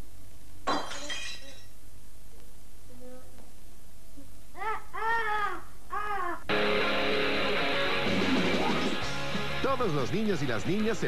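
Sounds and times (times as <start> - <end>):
china ornament shattering: 0.7 - 1.7.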